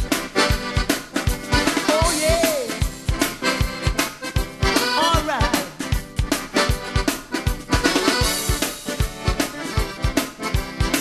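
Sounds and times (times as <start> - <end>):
bass drum beat: 0.0 - 11.0
piano accordion playing: 0.0 - 11.0.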